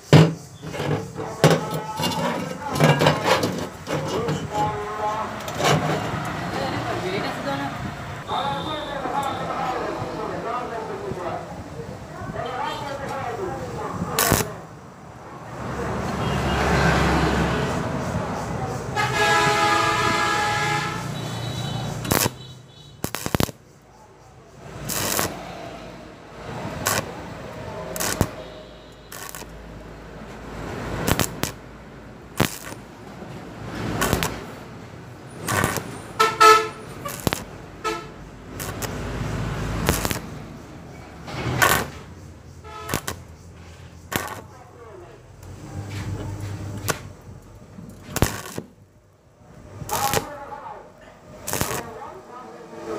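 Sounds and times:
vehicle horn: 0:08.3 - 0:09.5, 0:16.2 - 0:16.9, 0:19.0 - 0:23.0, 0:28.2 - 0:29.4, 0:36.1 - 0:37.2, 0:37.8 - 0:38.2, 0:42.6 - 0:43.2
welding arc bursts: 0:14.2 - 0:14.6, 0:20.6 - 0:23.7, 0:24.6 - 0:25.5, 0:26.6 - 0:27.3, 0:27.9 - 0:29.6, 0:30.7 - 0:31.6, 0:32.3 - 0:33.0, 0:33.6 - 0:40.5, 0:41.6 - 0:42.0, 0:42.6 - 0:43.3, 0:44.1 - 0:44.5, 0:48.2 - 0:48.8, 0:49.8 - 0:50.4, 0:51.4 - 0:52.0.

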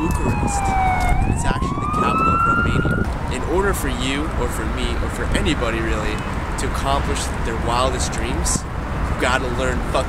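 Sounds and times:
emergency siren wailing: 0:00.0 - 0:04.3
low traffic rumble: 0:00.0 - 0:10.0.

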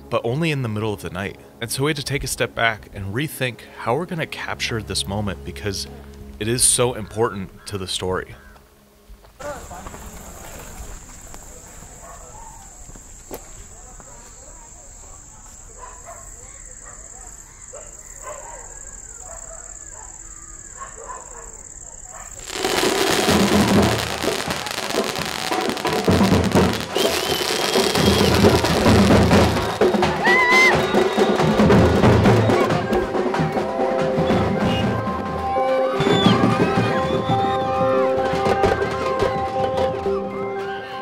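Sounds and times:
street drumming: 0:22.4 - 0:40.2
crowd: 0:22.4 - 0:41.0.

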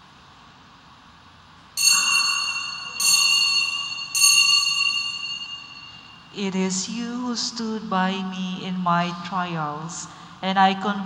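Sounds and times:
altar bell ringing: 0:01.8 - 0:06.4.

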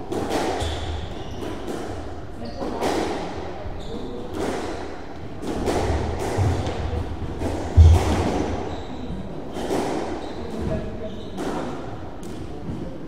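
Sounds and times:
squash ball knocks: 0:05.4 - 0:08.7
heavy thud: 0:07.7 - 0:08.7.

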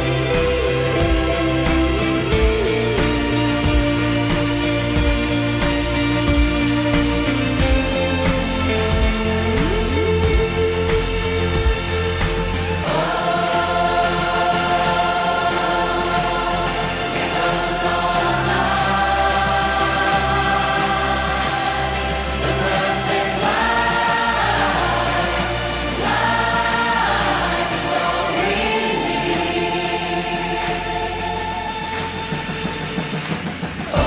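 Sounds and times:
choral singing: 0:00.0 - 0:34.0.

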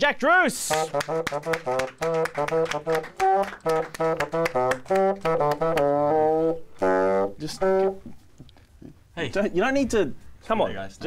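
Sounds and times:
bassoon playing jaunty tune: 0:00.8 - 0:08.2.

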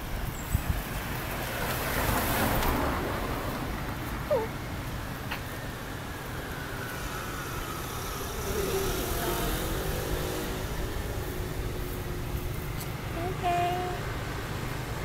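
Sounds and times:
street traffic rumble: 0:00.0 - 0:15.0
vehicle passing: 0:00.8 - 0:15.0.

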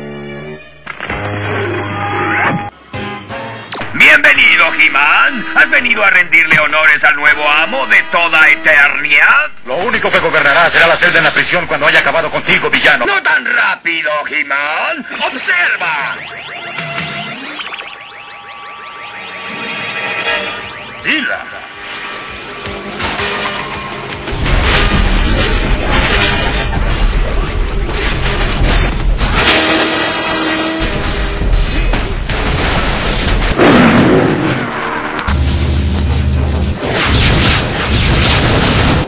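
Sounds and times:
falling electronic tones with echo: 0:15.0 - 0:23.0
held synthesized notes: 0:15.2 - 0:23.0.

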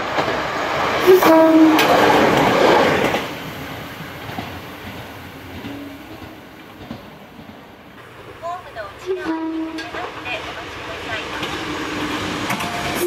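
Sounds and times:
diesel railcar engine and wheels: 0:00.0 - 0:13.0.

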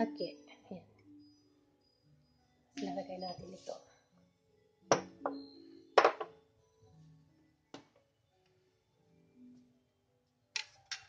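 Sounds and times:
soft background music: 0:00.0 - 0:11.0
ceramic cups clinking: 0:06.0 - 0:06.3.

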